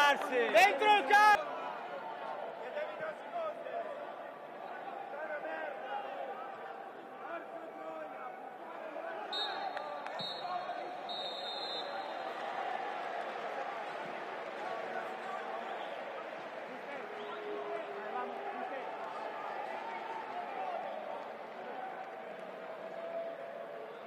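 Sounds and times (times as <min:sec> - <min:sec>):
players shouting: 0:00.0 - 0:03.2
sparse crowd: 0:00.0 - 0:24.0
referee's whistle blasts: 0:09.3 - 0:12.4.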